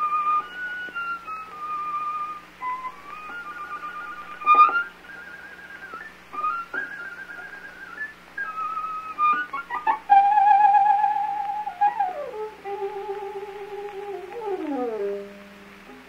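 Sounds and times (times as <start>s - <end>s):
solo violin melody: 0.0s - 7.0s, 7.7s - 16.0s.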